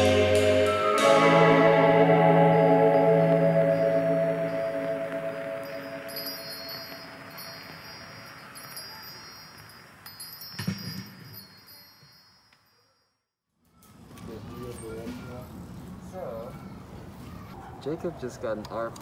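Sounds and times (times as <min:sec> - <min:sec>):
synth keyboard chord ringing: 0:00.0 - 0:07.5.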